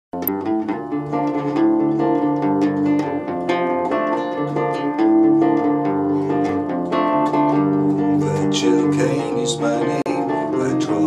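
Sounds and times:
nylon-string guitar fingerpicking: 0.2s - 11.0s.

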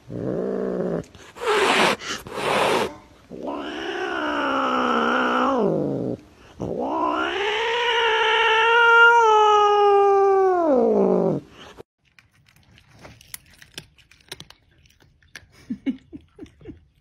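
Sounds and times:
cat-like yowls: 6.8s - 11.4s.

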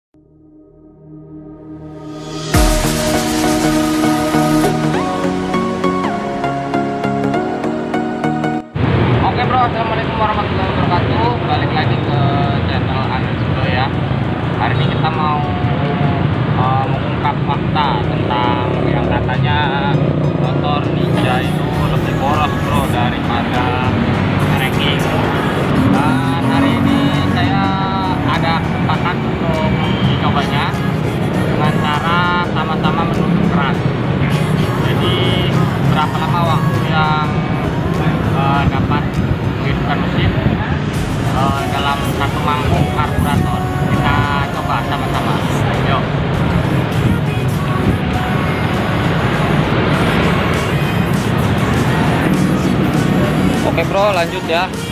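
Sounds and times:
intro music: 0.2s - 9.2s, 20.0s - 54.9s
street traffic noise: 4.6s - 54.9s
man talking: 14.6s - 30.9s, 31.6s - 46.1s, 53.1s - 54.9s.

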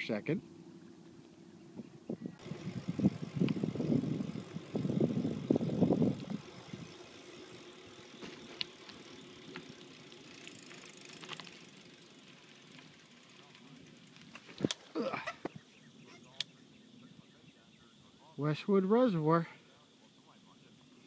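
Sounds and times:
bicycle rumbling over rough ground: 0.0s - 16.9s.

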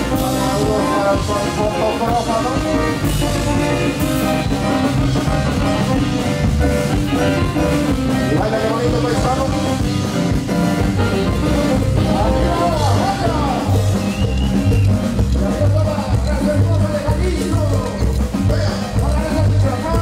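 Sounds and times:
drums and percussion: 0.0s - 20.0s
electronic keyboard sustained notes: 0.0s - 20.0s.

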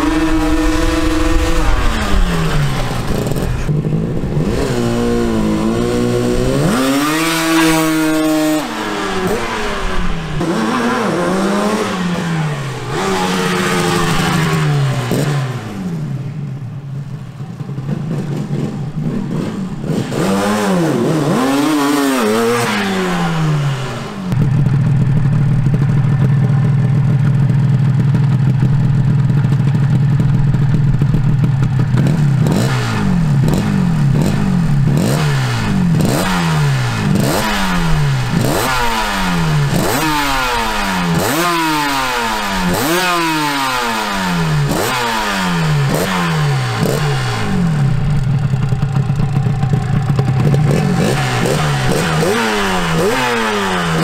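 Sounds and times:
motorcycle engine revving: 0.0s - 54.0s
motorcycle engine idling: 24.2s - 35.0s, 43.9s - 54.0s.

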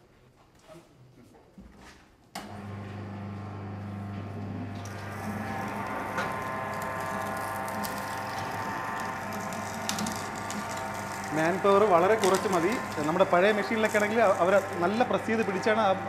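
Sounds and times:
juice machine humming: 2.4s - 16.0s
cane crushing crackle: 4.6s - 16.0s.

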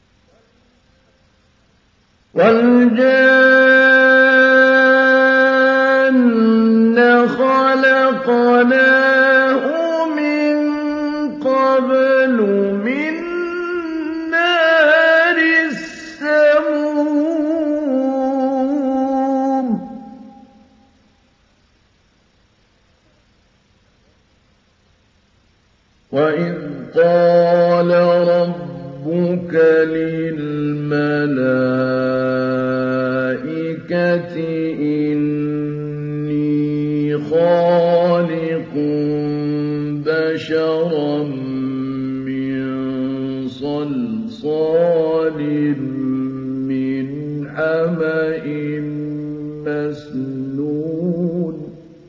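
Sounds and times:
man chanting recitation: 2.3s - 20.4s, 26.1s - 52.0s.

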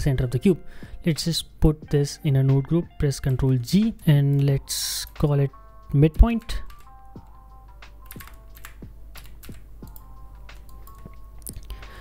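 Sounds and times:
computer keyboard typing: 6.2s - 7.3s, 7.9s - 11.8s.

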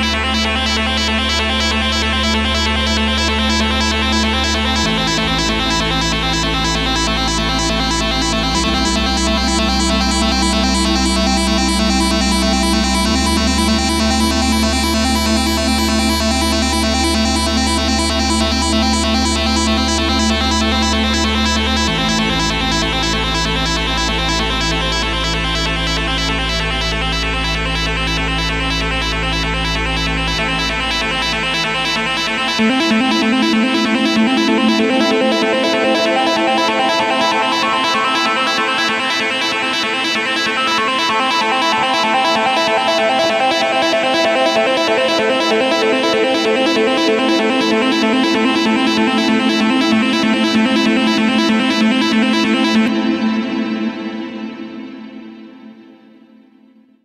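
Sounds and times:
deep bass: 0.0s - 38.7s
instrumental background music: 0.0s - 57.0s.

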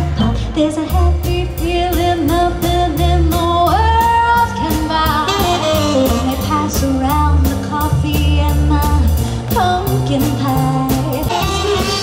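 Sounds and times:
bass: 0.0s - 12.0s
female singer: 0.0s - 12.0s
drum kit cymbal beat: 1.2s - 12.0s.

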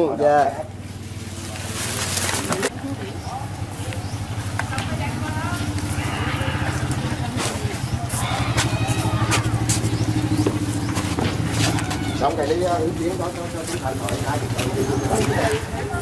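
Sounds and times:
engine humming steadily: 0.0s - 16.0s
faint voices talking: 0.0s - 16.0s.

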